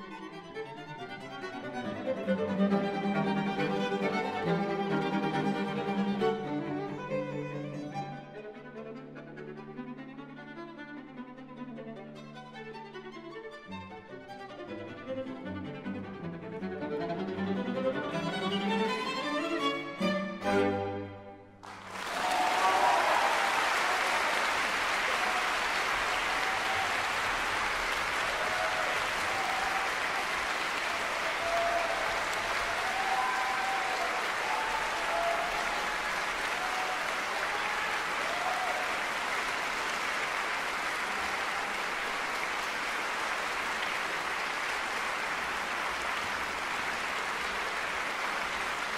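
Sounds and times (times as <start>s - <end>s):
audience applauding: 2.7s - 6.9s, 21.6s - 48.9s.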